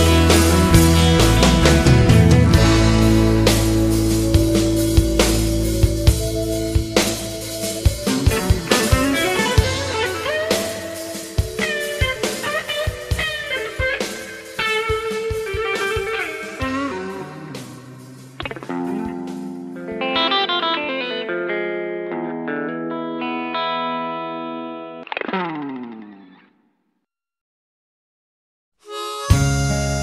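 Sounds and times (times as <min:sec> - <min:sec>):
drums: 0:00.0 - 0:21.0, 0:28.9 - 0:30.0
electric guitar lead lines: 0:00.0 - 0:26.6
ringing guitar chords: 0:00.0 - 0:26.6, 0:28.9 - 0:30.0.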